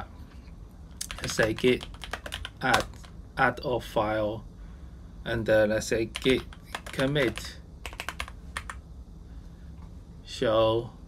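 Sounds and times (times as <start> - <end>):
low steady hum: 0.0 - 11.0
computer keyboard keystrokes: 1.0 - 3.1, 6.2 - 8.8.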